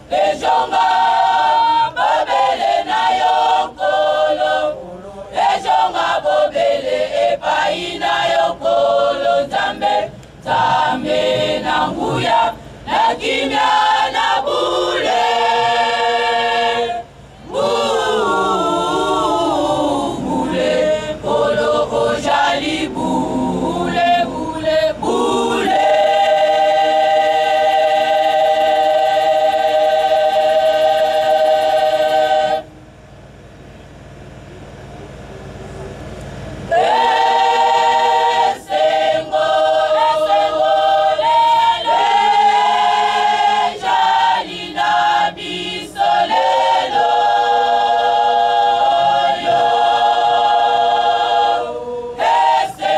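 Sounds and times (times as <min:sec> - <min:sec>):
women's choir singing: 0:00.0 - 0:32.7, 0:36.7 - 0:52.9.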